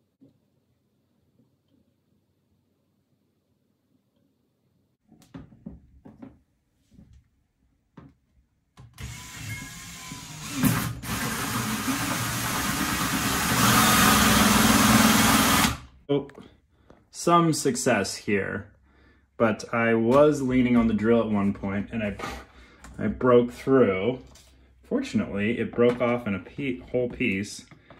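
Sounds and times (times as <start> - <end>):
cordless drill cutting plastic: 8.9 - 15.9.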